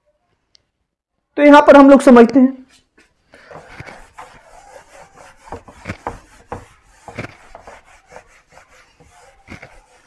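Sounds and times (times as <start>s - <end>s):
eraser scraping whiteboard: 3.4s - 10.0s.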